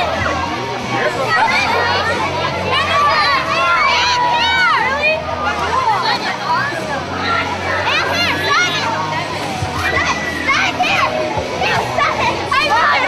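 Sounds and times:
children talking and squealing: 0.0s - 13.0s
children's high-pitched shrieks: 9.8s - 11.2s.

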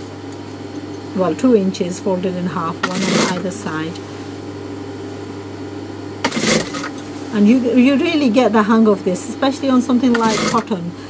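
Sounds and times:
sewing machine motor humming: 2.8s - 3.7s, 6.2s - 7.0s, 10.0s - 10.8s.

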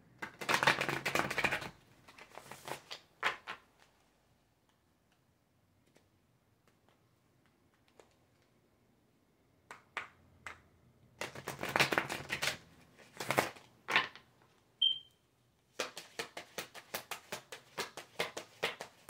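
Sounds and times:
cards being shuffled: 0.2s - 4.0s, 11.2s - 14.3s, 15.7s - 19.0s.

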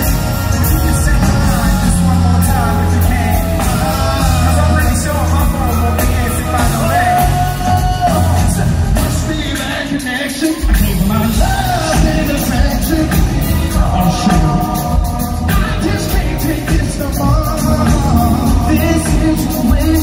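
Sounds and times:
band with heavy bass beat: 0.0s - 20.0s
vocal group singing live: 0.0s - 20.0s.

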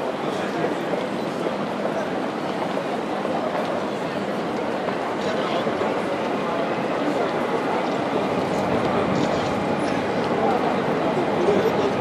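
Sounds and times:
city noise hubbub: 0.0s - 12.0s.

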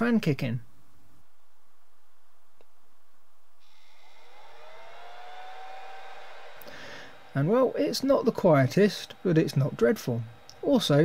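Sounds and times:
cooling fan whining: 3.6s - 11.0s
hiss: 3.6s - 11.0s.

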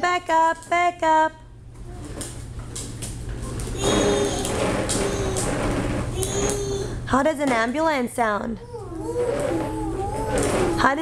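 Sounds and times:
plastic wheels rolling on concrete: 3.5s - 6.8s, 9.0s - 11.0s.

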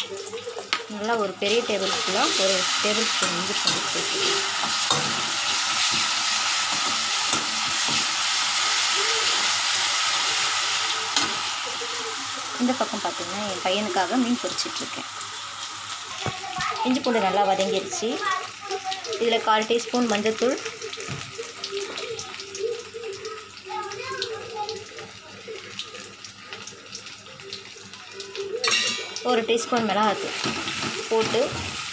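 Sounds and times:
onions sizzling in oil: 0.0s - 31.9s
spatula scraping pan: 1.5s - 8.3s.

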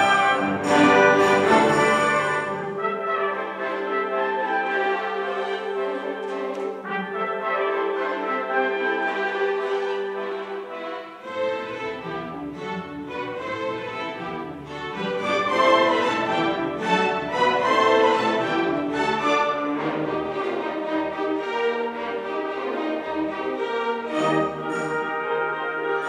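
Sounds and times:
youth orchestra playing: 0.0s - 26.0s.

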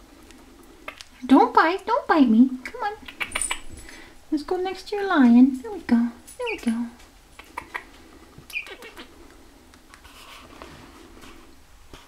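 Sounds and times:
gosling peeping: 2.9s - 4.1s, 6.4s - 9.4s.

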